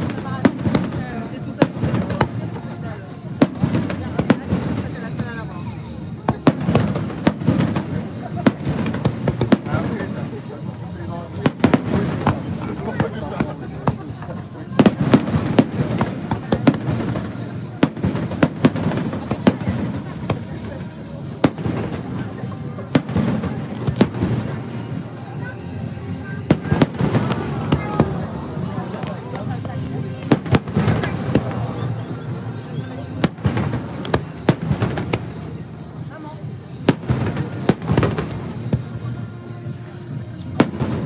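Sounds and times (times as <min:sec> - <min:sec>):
fireworks bursting with bangs: 0:00.0 - 0:41.0
fireworks crackling: 0:00.0 - 0:41.0.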